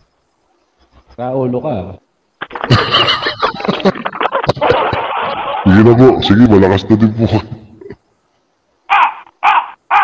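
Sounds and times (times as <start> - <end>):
harsh caw-like calls: 8.9 - 10.0.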